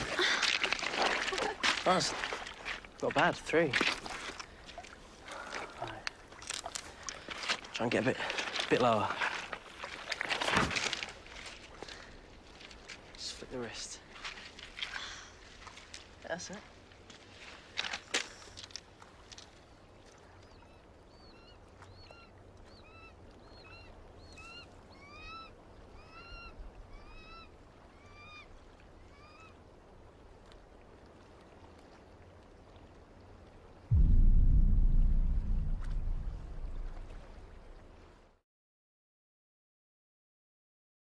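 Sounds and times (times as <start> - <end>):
loud low rumble: 33.9 - 37.5.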